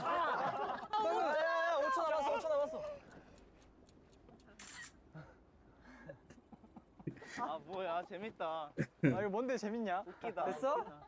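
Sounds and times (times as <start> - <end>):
faint ticks: 1.8 - 5.1.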